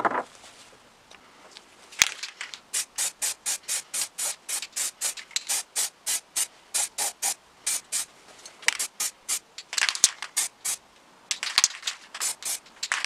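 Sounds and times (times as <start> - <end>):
spray paint can hissing: 2.7 - 8.1, 8.7 - 10.8, 11.4 - 13.0.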